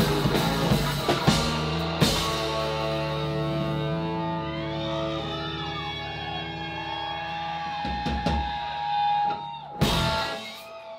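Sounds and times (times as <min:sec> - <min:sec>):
electric guitar long note: 0:00.0 - 0:08.9
drums: 0:00.0 - 0:10.9.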